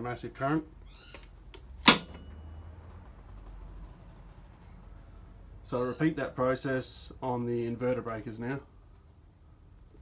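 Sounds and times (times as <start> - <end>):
circuit breaker snapping closed: 1.5 - 2.3.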